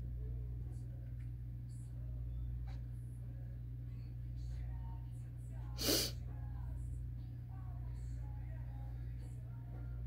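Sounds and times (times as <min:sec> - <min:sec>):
steady low hum: 0:00.0 - 0:10.0
person sharp breath: 0:05.8 - 0:06.1.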